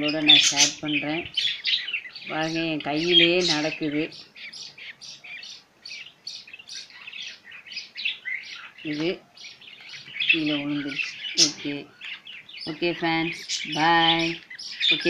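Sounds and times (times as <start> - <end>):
person speaking: 0.0 - 1.3, 2.3 - 4.2, 8.9 - 9.2, 10.3 - 11.9, 12.7 - 15.0
lovebirds chirping: 0.0 - 15.0.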